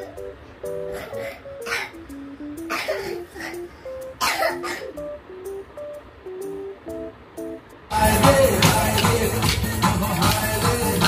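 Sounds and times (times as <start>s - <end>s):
plucked melody background music: 0.0s - 11.0s.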